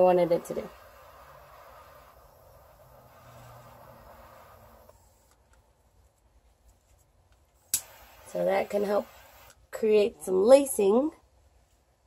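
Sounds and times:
faint steady hiss: 0:00.0 - 0:12.0.

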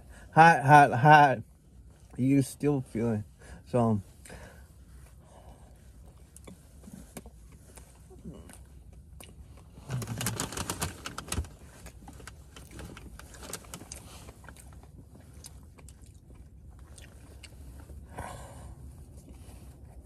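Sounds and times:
chewing doughnut with mouth smacks: 0:05.9 - 0:10.8, 0:11.6 - 0:18.1.

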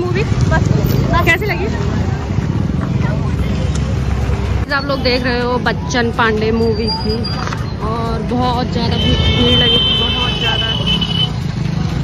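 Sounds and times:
crowd chatter: 0:00.0 - 0:12.0
motorbike and traffic engines: 0:00.0 - 0:12.0.

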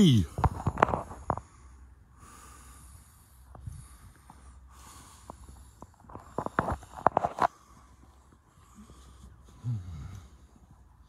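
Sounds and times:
faint breath: 0:01.1 - 0:10.9.

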